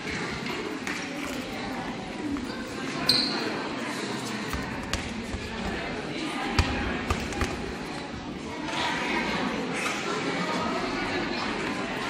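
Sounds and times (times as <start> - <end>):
voices echoing in a hall: 0.0 - 12.0
footballs thudding on gym floor: 6.5 - 7.7.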